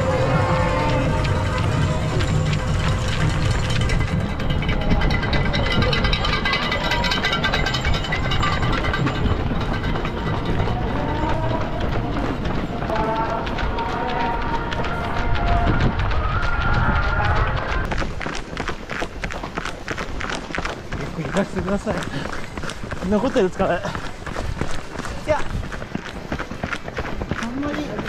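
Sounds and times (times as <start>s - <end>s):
music: 0.0s - 15.8s
footsteps of crowd of runners: 0.0s - 28.0s
voices: 4.6s - 17.8s.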